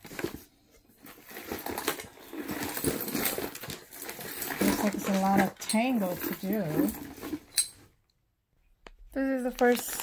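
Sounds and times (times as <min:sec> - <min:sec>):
handling small items: 0:00.0 - 0:10.0.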